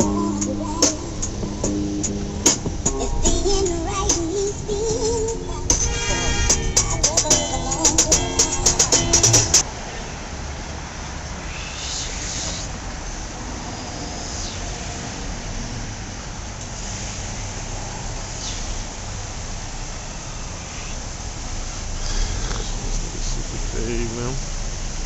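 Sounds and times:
idling cars and traffic rumble: 0.0s - 25.0s.

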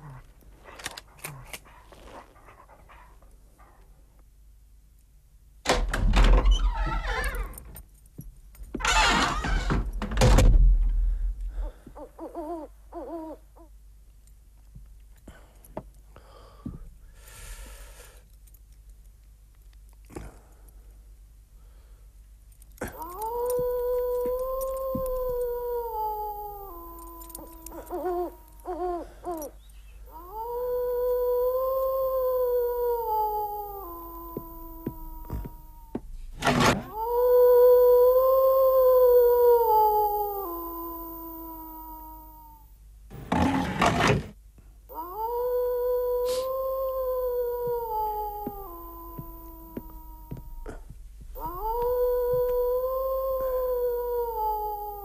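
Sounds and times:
wolf howling: 22.8s - 42.7s, 44.9s - 55.0s.

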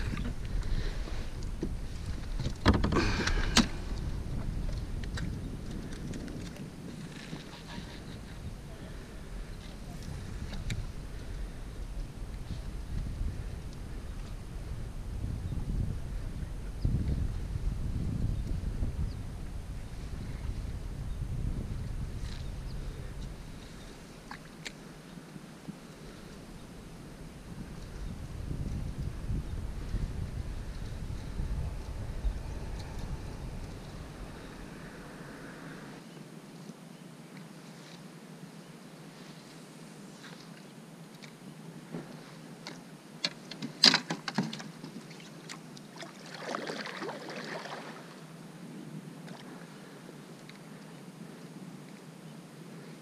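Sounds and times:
wind buffeting microphone: 0.0s - 24.1s, 26.4s - 36.1s.

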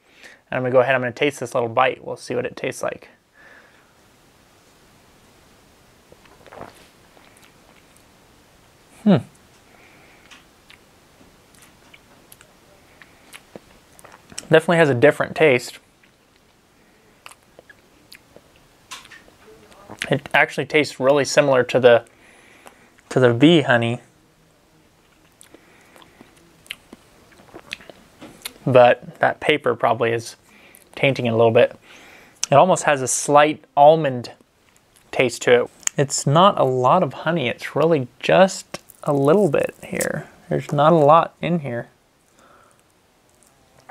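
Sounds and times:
person chewing: 6.1s - 8.1s, 10.2s - 10.9s, 11.5s - 14.5s, 17.2s - 20.1s, 25.0s - 28.6s, 38.7s - 40.8s, 42.2s - 43.9s
soft mouth clicks and smacks: 11.5s - 14.5s, 17.2s - 19.2s, 25.1s - 28.6s.

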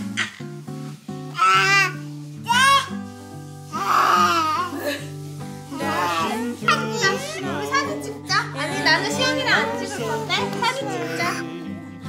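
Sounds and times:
background music: 0.0s - 12.0s
toddlers babbling: 1.4s - 3.0s, 3.7s - 5.0s, 5.7s - 11.6s.

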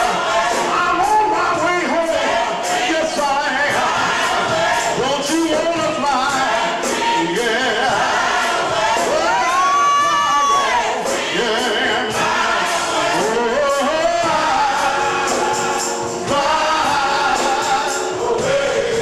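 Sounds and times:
gospel choir singing: 0.0s - 19.0s.

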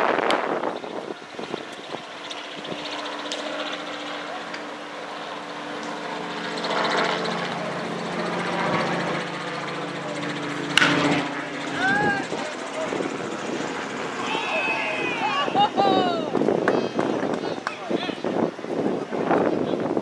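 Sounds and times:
steady engine drone: 0.0s - 20.0s
bat cracking a baseball: 10.8s - 11.1s
people shouting: 11.7s - 12.4s, 14.2s - 16.4s.

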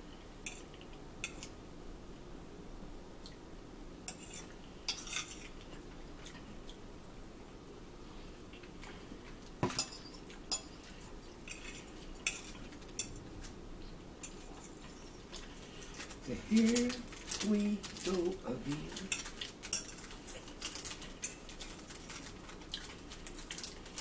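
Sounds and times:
metal fork scraping a plate: 4.1s - 5.5s.

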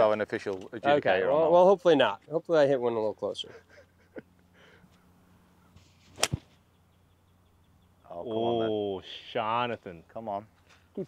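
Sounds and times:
golf club swish: 5.8s - 6.6s
golf club striking ball crack: 6.1s - 6.6s.

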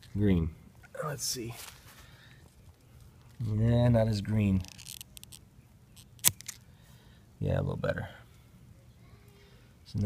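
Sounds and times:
pruners snipping stem: 6.0s - 6.6s.

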